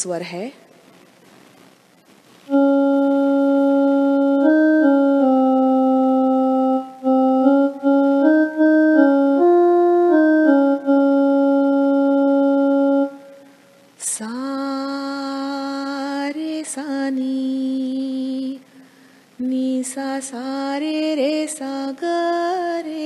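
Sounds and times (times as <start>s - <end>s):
electronic keyboard melody: 2.5s - 13.6s.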